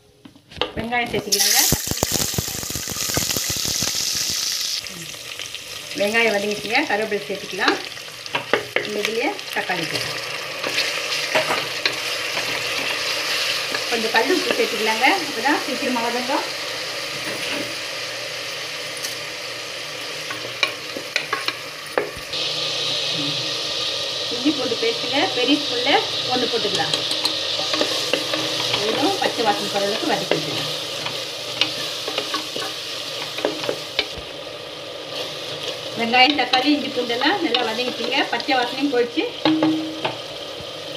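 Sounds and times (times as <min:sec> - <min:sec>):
food sizzling in hot oil: 0:01.1 - 0:40.9
wooden spatula knocking on pot: 0:39.4 - 0:40.2.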